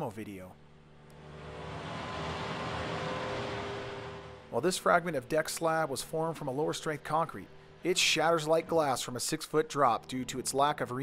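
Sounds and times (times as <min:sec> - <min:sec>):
diesel engine humming: 0:00.6 - 0:10.7.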